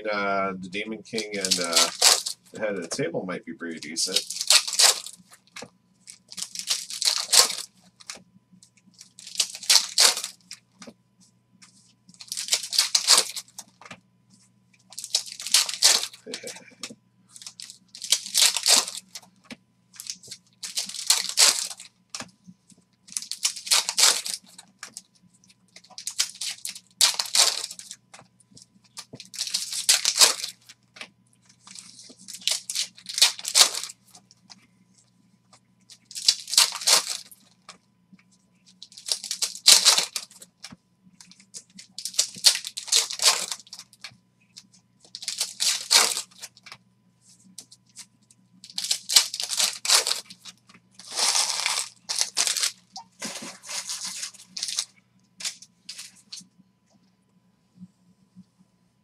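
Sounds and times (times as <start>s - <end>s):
foil packs tearing and crinkling: 1.1s - 2.7s, 3.7s - 8.2s, 9.0s - 10.6s, 12.2s - 13.7s, 14.9s - 19.3s, 20.0s - 22.3s, 23.1s - 25.0s, 25.9s - 28.0s, 29.0s - 30.7s, 31.6s - 34.0s, 36.1s - 37.5s, 38.8s - 40.5s, 41.9s - 44.0s, 45.1s - 46.6s, 48.6s - 56.0s.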